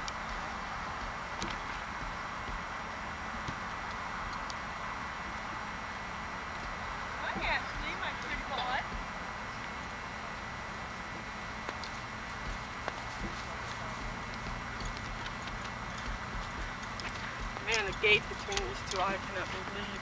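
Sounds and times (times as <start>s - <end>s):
horse hooves stepping: 0.0s - 20.0s
person speaking: 17.1s - 20.0s.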